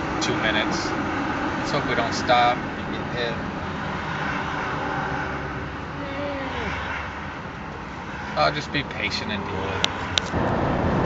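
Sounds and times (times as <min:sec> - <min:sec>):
engine and road noise: 0:00.0 - 0:11.0.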